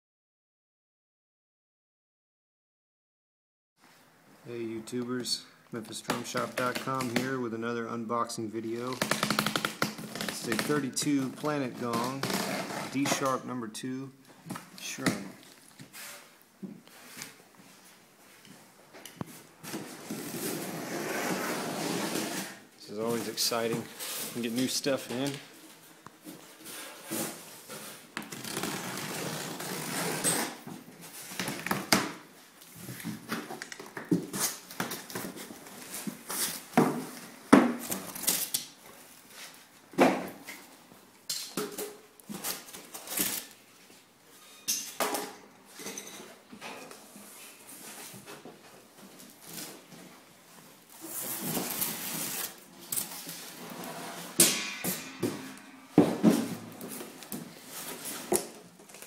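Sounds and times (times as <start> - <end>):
packing tape pulled off: 28.2 - 30.6, 37.8 - 38.8, 51.0 - 54.4.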